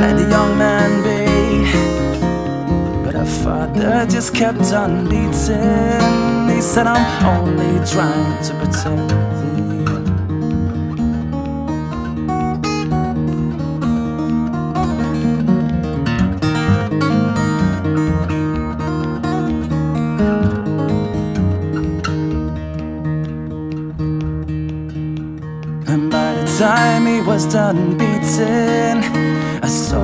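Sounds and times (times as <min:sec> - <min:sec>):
acoustic guitar plucked notes: 0:00.0 - 0:30.0.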